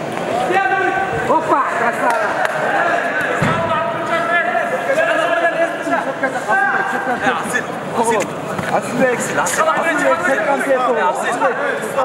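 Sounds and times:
men shouting: 0:00.4 - 0:07.5.

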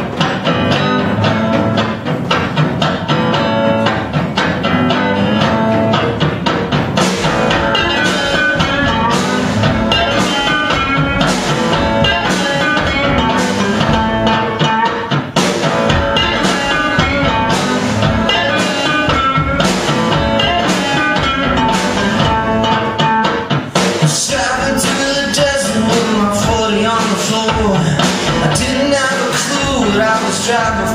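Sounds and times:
drums struck with mallets: 0:00.0 - 0:30.9
electric guitar strumming: 0:00.0 - 0:30.9.

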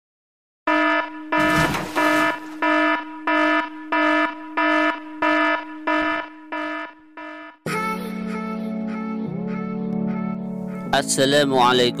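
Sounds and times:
buzzy electronic warning beeps: 0:00.7 - 0:07.6.

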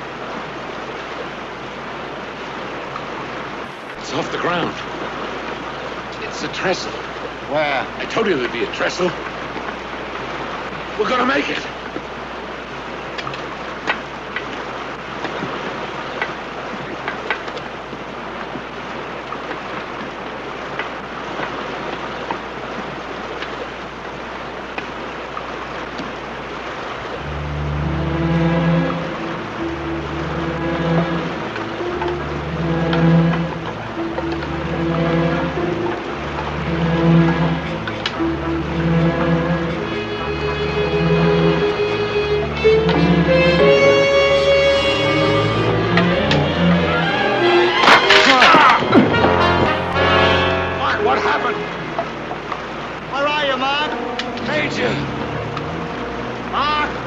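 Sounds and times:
steady rushing noise: 0:26.2 - 0:44.3
dramatic film score: 0:27.0 - 0:57.0.

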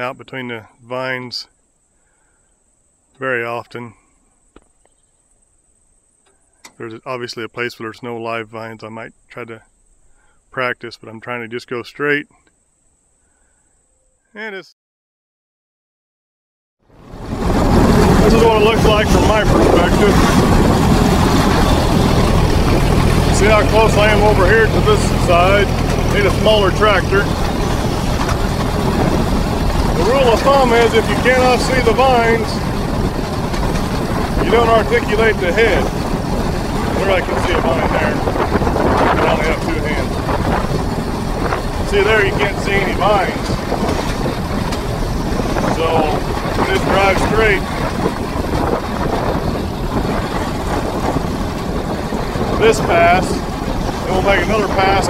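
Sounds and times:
tractor engine running under load: 0:17.0 - 0:55.0.

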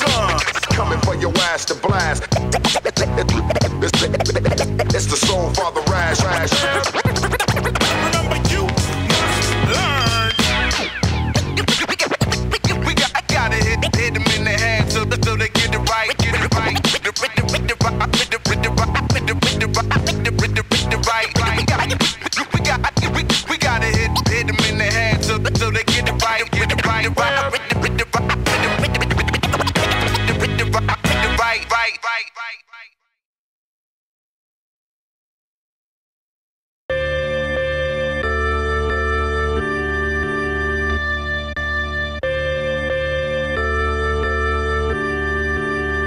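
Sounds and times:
hip-hop drum and bass loop: 0:00.0 - 0:31.8
turntable scratching: 0:00.0 - 0:31.8.

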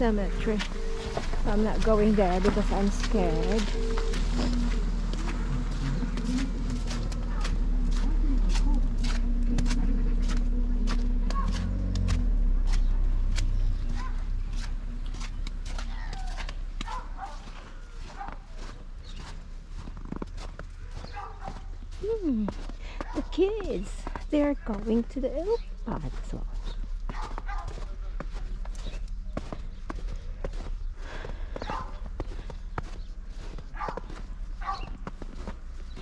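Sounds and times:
low rumble: 0:00.0 - 0:16.9
steady low hum: 0:00.0 - 0:18.0
footsteps crunching in snow: 0:00.0 - 0:36.0.

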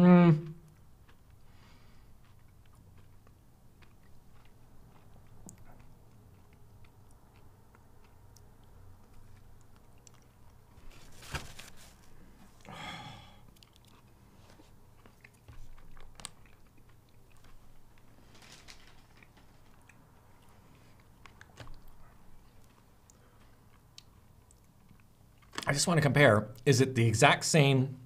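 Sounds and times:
quiet chewing: 0:00.4 - 0:25.7
crunching chocolate coating: 0:00.5 - 0:11.0.

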